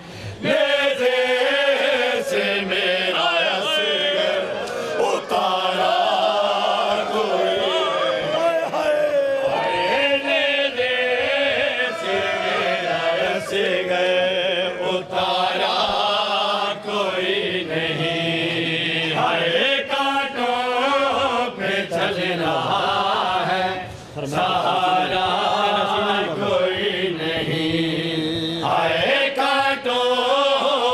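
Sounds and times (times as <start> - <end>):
men chanting lament: 0.3 - 30.9.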